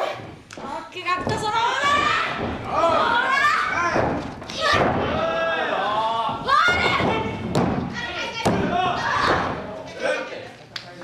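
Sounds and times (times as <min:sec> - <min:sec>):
wrestlers shouting and yelling: 0:00.0 - 0:10.5.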